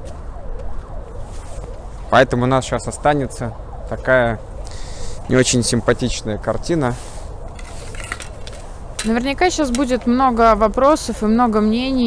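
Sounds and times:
faint siren: 0:00.0 - 0:12.0.

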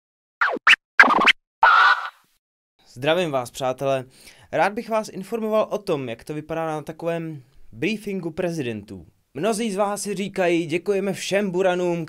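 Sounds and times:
record scratches: 0:00.4 - 0:02.3.

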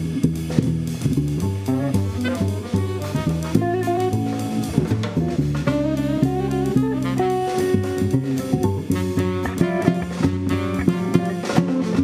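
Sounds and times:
double bass: 0:00.0 - 0:12.0
jazz band playing: 0:00.0 - 0:12.0
electric guitar: 0:01.4 - 0:12.0.

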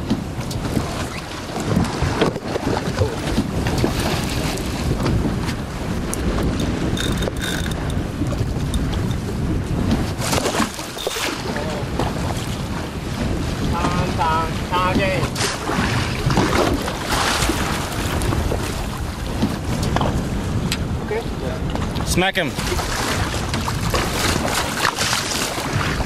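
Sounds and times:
water lapping against hull: 0:00.0 - 0:26.0
wind buffeting microphone: 0:00.0 - 0:26.0.

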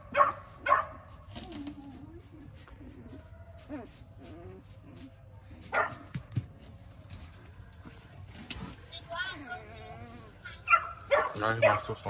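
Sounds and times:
puppies whimpering and squealing: 0:09.4 - 0:10.8.

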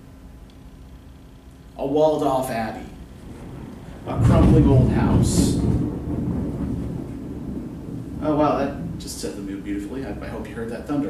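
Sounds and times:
thunder rumbling: 0:01.8 - 0:11.0.

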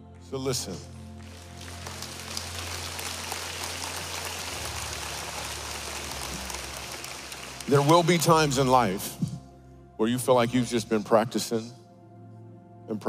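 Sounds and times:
soft background music: 0:00.0 - 0:13.0
large audience applauding: 0:01.0 - 0:09.0.

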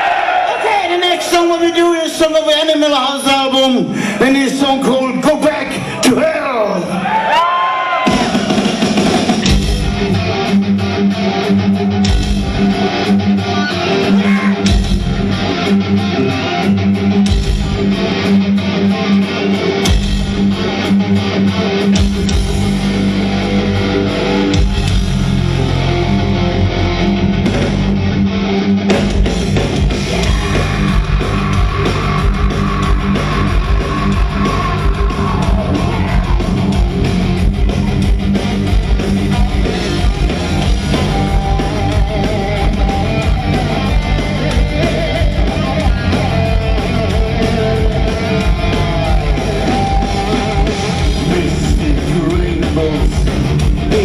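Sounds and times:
heavy metal band playing live: 0:00.0 - 0:54.0.

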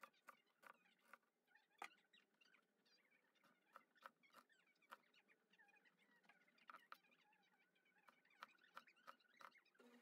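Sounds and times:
onion layers squeaking: 0:00.0 - 0:10.0.

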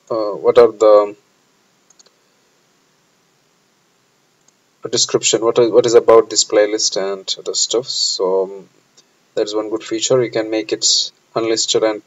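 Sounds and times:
person speaking: 0:00.0 - 0:01.2, 0:04.8 - 0:08.7, 0:09.4 - 0:12.0
computer mouse clicks: 0:01.8 - 0:02.2, 0:04.4 - 0:04.6.

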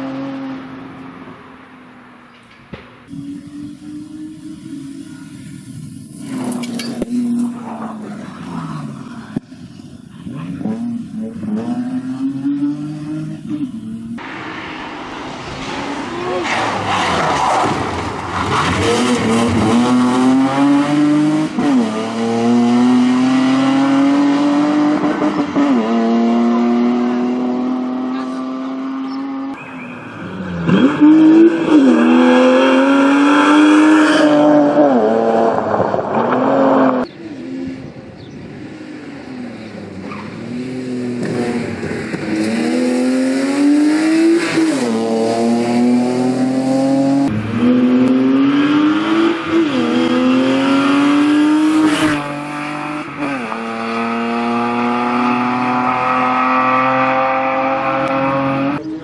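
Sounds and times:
rally car engine accelerating: 0:10.2 - 0:29.6, 0:30.3 - 0:59.0.

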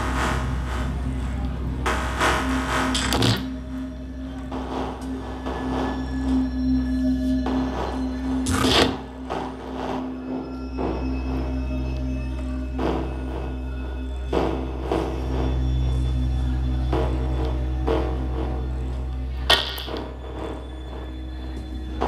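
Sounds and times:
deep bass drone: 0:00.0 - 0:22.0
held mid-low tone: 0:00.0 - 0:22.0.

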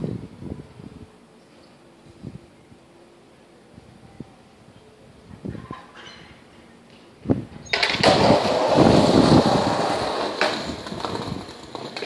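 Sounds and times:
skateboard wheels rolling on asphalt: 0:06.9 - 0:12.0.

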